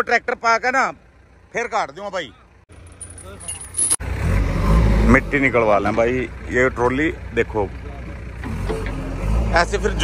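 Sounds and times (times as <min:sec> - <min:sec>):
diesel engine rumbling: 0:00.0 - 0:10.0
steel chain clinking: 0:02.9 - 0:04.0.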